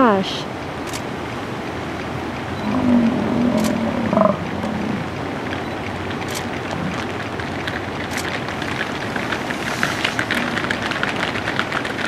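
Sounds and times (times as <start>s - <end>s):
steady background noise: 0.0s - 12.0s
bison grunting: 2.6s - 5.4s, 6.4s - 7.7s, 8.6s - 12.0s.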